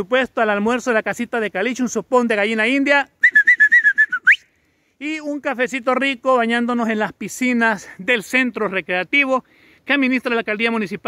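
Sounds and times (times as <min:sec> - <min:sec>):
loud whistled call: 0:03.2 - 0:04.5.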